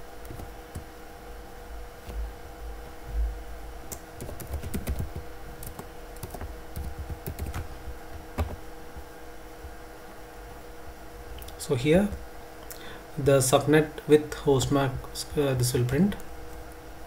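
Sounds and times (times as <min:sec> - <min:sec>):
faint steady hum: 0:00.0 - 0:17.0
computer keyboard typing: 0:00.2 - 0:00.9, 0:03.9 - 0:07.7, 0:08.4 - 0:08.6.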